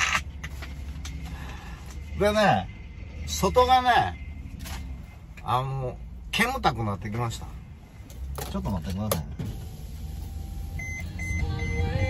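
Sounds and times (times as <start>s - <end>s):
van engine running: 0.0s - 12.0s.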